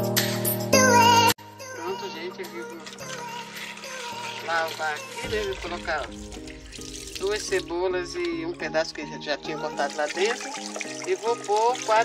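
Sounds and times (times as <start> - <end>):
background music with singing: 0.0 - 12.0
tap water running into plastic tub: 2.6 - 8.4, 9.5 - 12.0.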